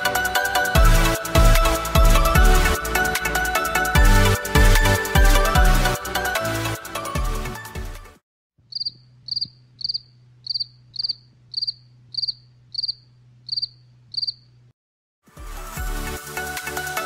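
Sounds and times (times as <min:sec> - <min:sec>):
music: 0:00.0 - 0:08.2, 0:15.2 - 0:17.0
cricket chirping: 0:08.7 - 0:14.6.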